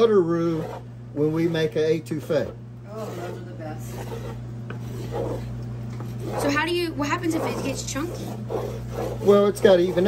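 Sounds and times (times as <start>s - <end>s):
steady low hum: 0.0s - 10.0s
wooden spatula scraping a pot: 0.0s - 10.0s.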